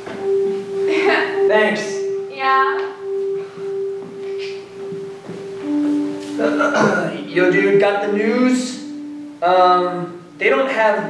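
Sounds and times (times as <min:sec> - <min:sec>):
steady keyboard note: 0:00.0 - 0:11.0.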